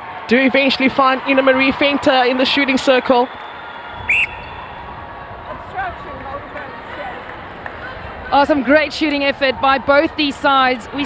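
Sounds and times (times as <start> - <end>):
crowd din: 0.0 - 11.0
whistle blast: 4.0 - 4.8.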